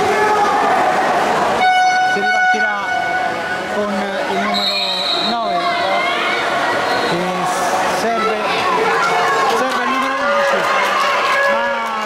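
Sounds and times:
electronic game horn: 1.6s - 3.6s.

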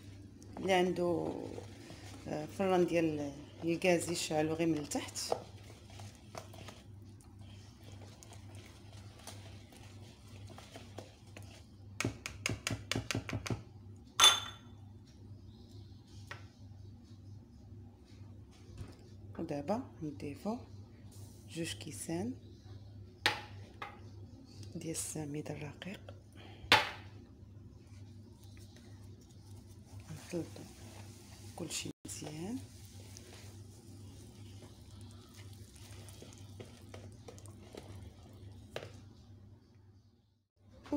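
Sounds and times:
wire whisk beating batter in bowl: 0.5s - 13.6s, 28.7s - 39.2s
faint low hum: 13.8s - 40.9s.

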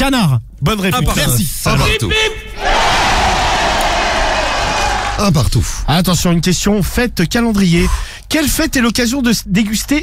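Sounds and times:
canned crowd applause and cheering: 2.6s - 5.3s.

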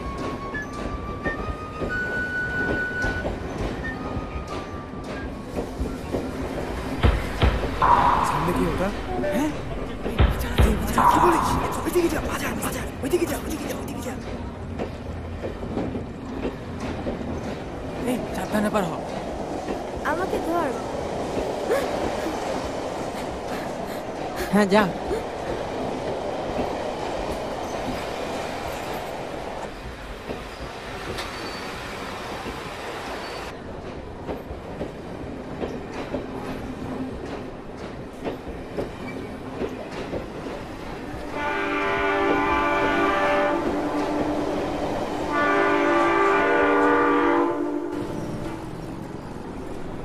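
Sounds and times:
train carriages rattling: 0.0s - 50.0s
train horn blasts: 41.2s - 48.4s.

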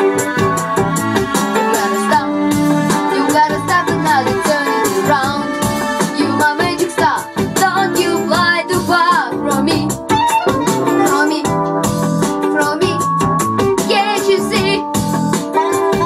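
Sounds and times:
boy singing into microphone: 1.7s - 5.5s.

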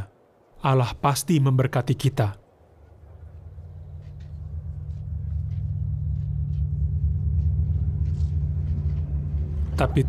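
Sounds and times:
low rumbling drone: 2.5s - 10.0s.

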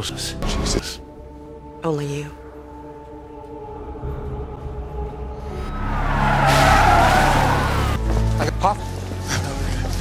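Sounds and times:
car tyres squealing skid: 5.7s - 8.0s.

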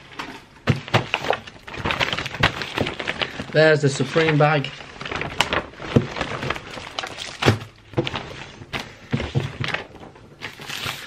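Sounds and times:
plastic bag and paper crinkling: 0.0s - 11.0s.

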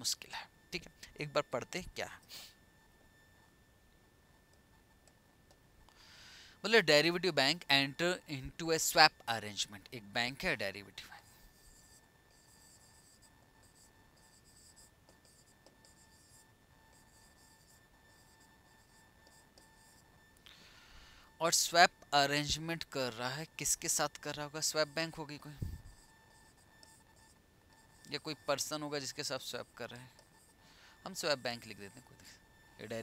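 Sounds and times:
faint electrical whine: 0.0s - 33.0s
stylus scratching on a screen: 7.9s - 20.4s, 21.3s - 33.0s.

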